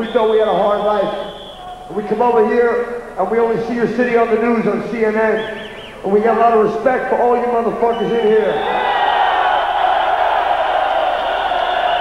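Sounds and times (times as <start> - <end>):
crowd cheering and shouting: 8.4 - 12.0.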